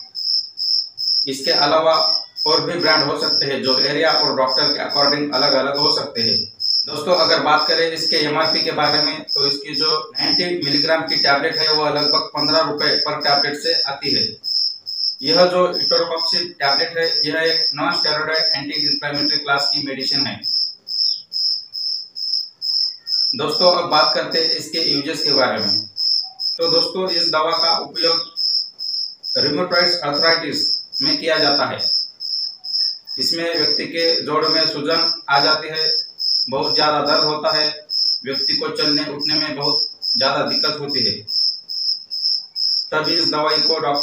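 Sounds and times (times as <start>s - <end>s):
cricket chirping: 0.0s - 44.0s.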